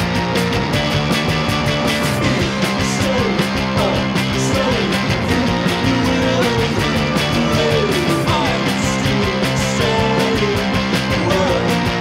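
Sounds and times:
driving drum beat: 0:00.0 - 0:12.0
electric guitar lines: 0:00.0 - 0:12.0
rock band instrumental: 0:00.0 - 0:12.0.

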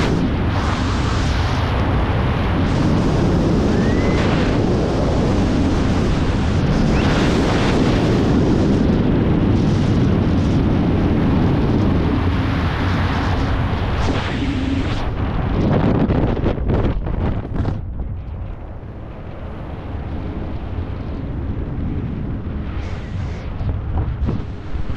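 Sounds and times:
wind roaring over microphone: 0:00.0 - 0:24.9.

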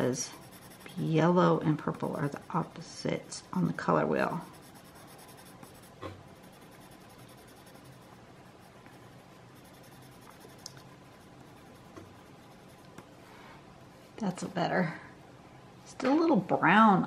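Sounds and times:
pencil scratching on paper: 0:00.0 - 0:13.1.

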